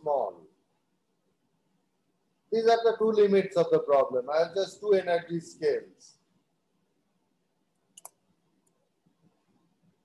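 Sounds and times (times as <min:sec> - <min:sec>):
small sharp clicks: 0:07.8 - 0:08.8.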